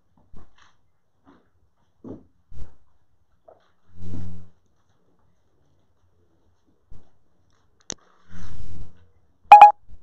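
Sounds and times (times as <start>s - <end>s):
short electronic beeps: 9.5s - 9.7s.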